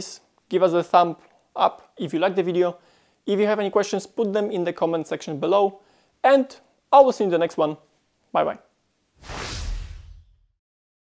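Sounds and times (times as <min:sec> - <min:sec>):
whoosh with deep rumble: 0:09.2 - 0:10.5.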